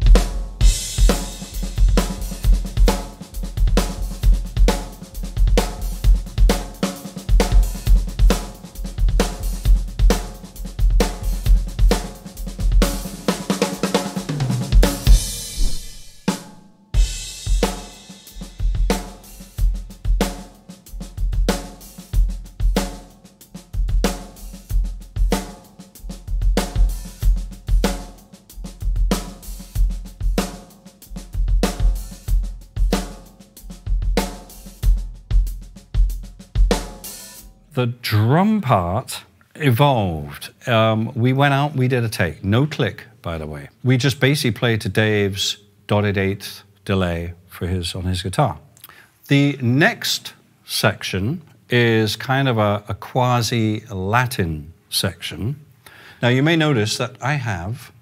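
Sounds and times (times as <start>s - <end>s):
bass drum: 0.0s - 20.3s
snare hits: 15.4s - 16.7s.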